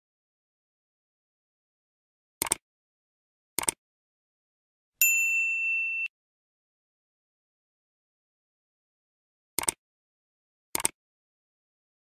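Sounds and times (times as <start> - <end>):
bright bell ding: 5.0 - 6.1.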